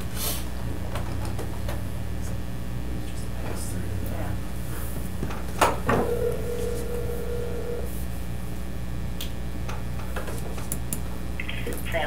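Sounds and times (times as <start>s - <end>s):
phone ringback tone: 5.9s - 8.0s.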